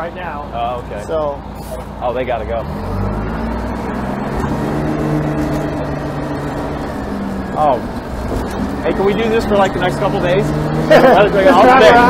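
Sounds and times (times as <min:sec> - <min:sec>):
diesel engine running: 0:00.0 - 0:12.0
road and wind noise: 0:00.0 - 0:12.0.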